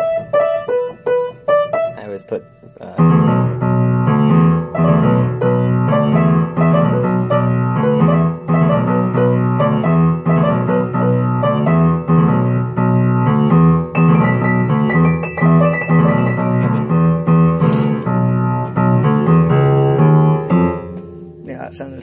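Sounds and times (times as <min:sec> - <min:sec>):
piano music: 0:00.0 - 0:22.0.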